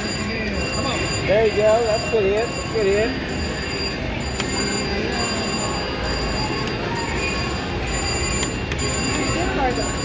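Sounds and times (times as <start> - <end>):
slot machine electronic tones: 0.0 - 10.0.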